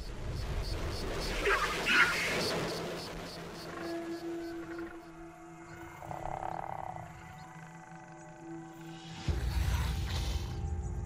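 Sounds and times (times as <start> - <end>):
dark sustained score: 3.6 - 11.0.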